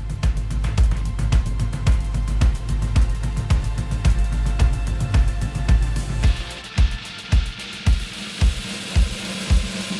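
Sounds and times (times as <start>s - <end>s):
low backing tone: 0.0s - 7.7s
drum kit playing a steady beat: 0.0s - 9.9s.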